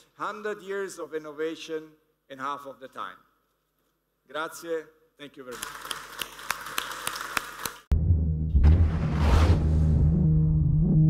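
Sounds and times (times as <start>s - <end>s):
audience applauding: 5.5s - 7.9s
music with heavy bass: 7.9s - 11.0s.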